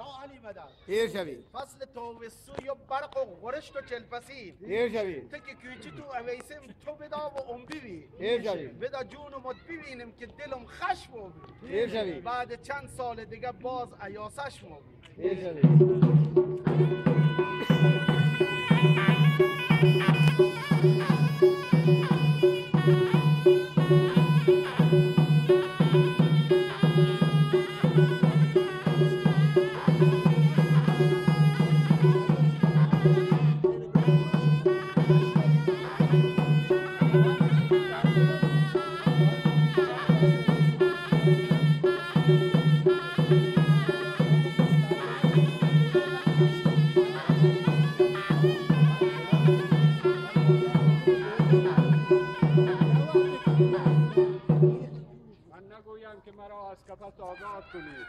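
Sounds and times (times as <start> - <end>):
pulsing drum beat: 15.5 - 55.0
reed pipe melody: 15.6 - 55.1.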